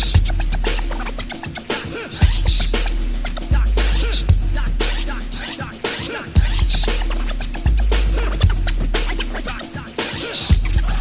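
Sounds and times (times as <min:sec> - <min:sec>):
hip hop beat: 0:00.0 - 0:11.0
record scratching: 0:00.0 - 0:11.0.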